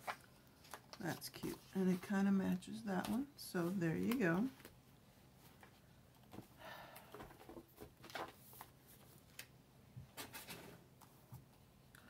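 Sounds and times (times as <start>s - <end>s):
paper pages rustling: 0.0s - 2.2s, 7.3s - 9.5s.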